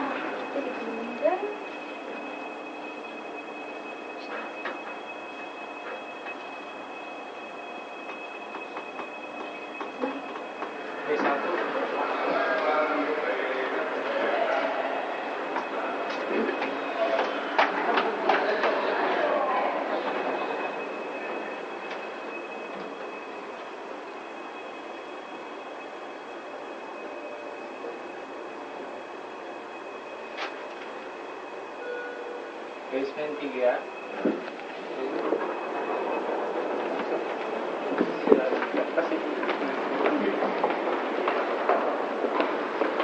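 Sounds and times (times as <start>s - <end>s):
elevator car rushing noise: 0.0s - 43.0s.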